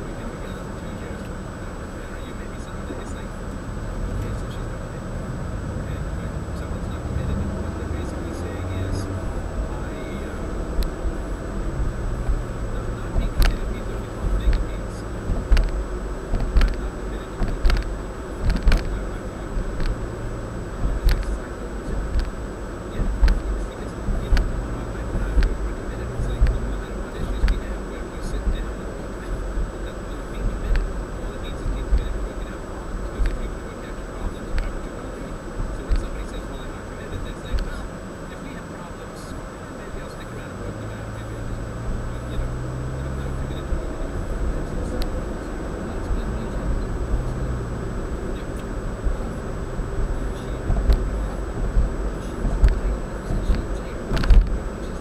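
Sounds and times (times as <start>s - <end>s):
car road and engine rumble: 0.0s - 55.0s
sharp clicks and knocks: 10.7s - 31.0s, 31.6s - 33.6s, 37.1s - 37.8s, 48.5s - 54.8s.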